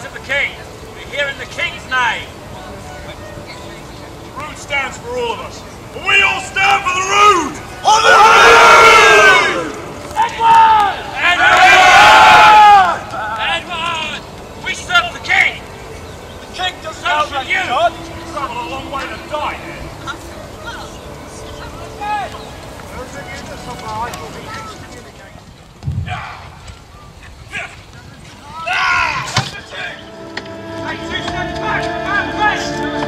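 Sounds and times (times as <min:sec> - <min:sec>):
faint crowd chatter: 0:00.0 - 0:33.0
scattered shouts and calls: 0:03.0 - 0:25.0
group of people shouting: 0:06.0 - 0:13.7, 0:28.5 - 0:30.0.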